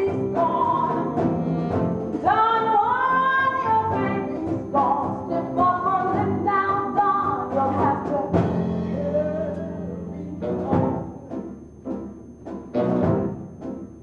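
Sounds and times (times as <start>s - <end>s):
woman singing: 0.0s - 1.5s, 2.1s - 11.4s
instrumental accompaniment: 0.0s - 14.0s.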